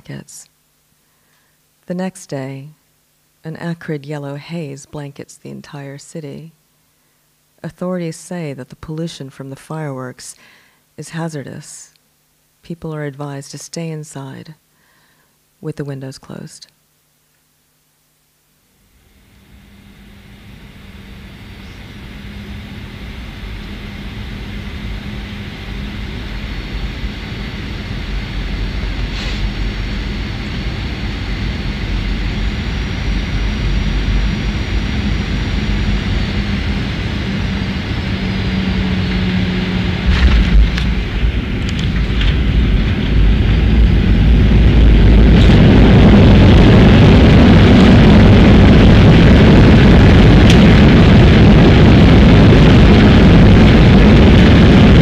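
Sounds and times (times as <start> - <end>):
jet engine roar in cabin: 18.9 - 55.0.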